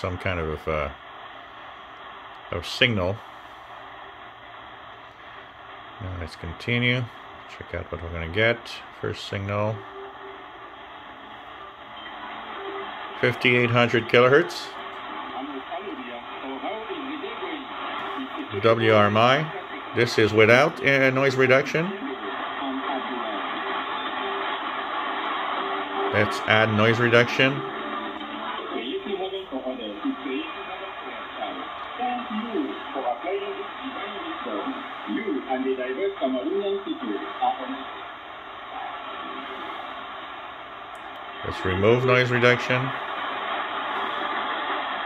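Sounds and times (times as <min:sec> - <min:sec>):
radio static hiss: 0:00.0 - 0:45.0
radio voice: 0:05.7 - 0:10.0, 0:12.0 - 0:39.9, 0:41.3 - 0:44.8.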